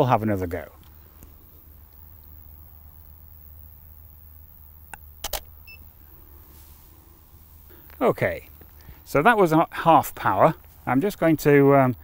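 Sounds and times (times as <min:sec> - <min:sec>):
camera shutter clicks: 0:05.2 - 0:05.5
faint beep: 0:05.6 - 0:05.9.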